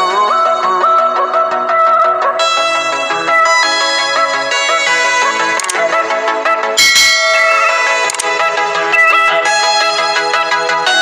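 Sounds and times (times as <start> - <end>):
electronic intro music: 2.4 - 11.0
notification bell ringing: 6.8 - 8.0.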